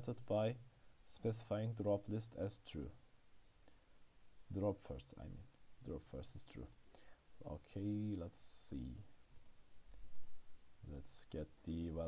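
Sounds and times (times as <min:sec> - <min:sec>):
computer mouse clicking: 0:06.7 - 0:07.0, 0:09.3 - 0:10.4.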